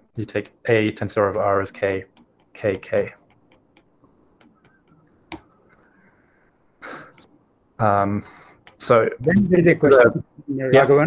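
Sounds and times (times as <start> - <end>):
stylus tapping on glass screen: 2.0 - 6.0.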